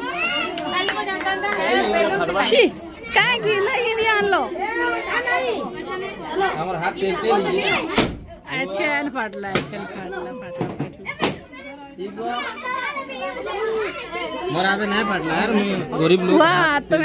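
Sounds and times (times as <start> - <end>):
children talking and calling out: 0.0 - 17.0.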